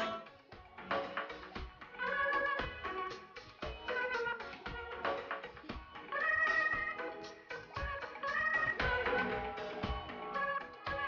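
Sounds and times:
accordion playing chords: 0.0s - 0.5s, 6.0s - 11.0s
percussion beat: 0.0s - 11.0s.

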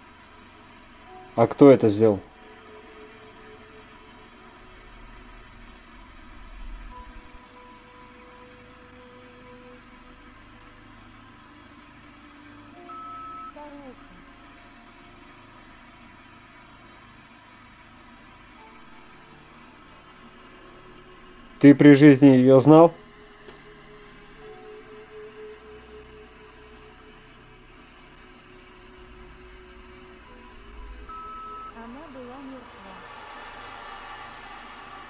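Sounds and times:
faint electronic hiss: 0.0s - 35.0s
faint held tones: 12.5s - 15.2s, 23.3s - 35.0s.

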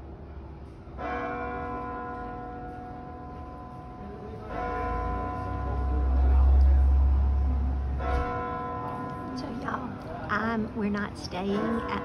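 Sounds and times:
church bells ringing: 0.9s - 12.0s.

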